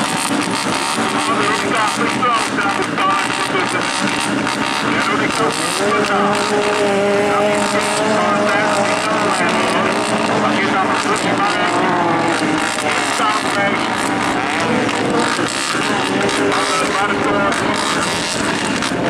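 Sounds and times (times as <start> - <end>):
race car engines accelerating: 0.0 - 19.0.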